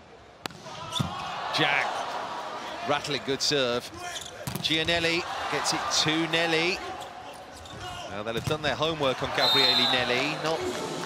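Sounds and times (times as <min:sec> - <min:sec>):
arena crowd noise: 0:00.0 - 0:11.0
volleyball bouncing on court floor: 0:04.4 - 0:05.0.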